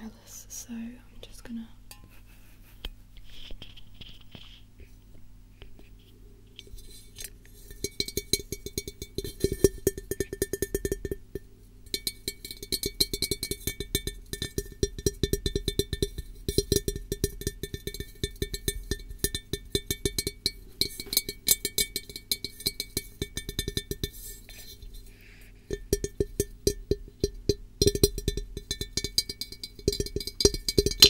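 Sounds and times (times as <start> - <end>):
tapping on ringing object: 1.9 - 2.2, 7.7 - 24.2, 25.7 - 31.0.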